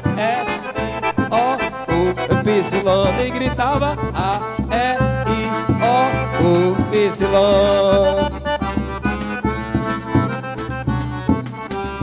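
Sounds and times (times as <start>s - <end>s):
accordion melody: 0.0s - 12.0s
bass drum beat: 0.0s - 12.0s.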